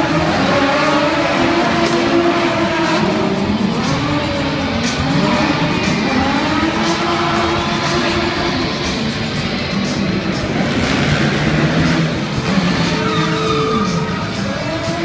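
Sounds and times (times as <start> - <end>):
car engine revving: 0.0 - 15.0
loud show music: 0.0 - 15.0.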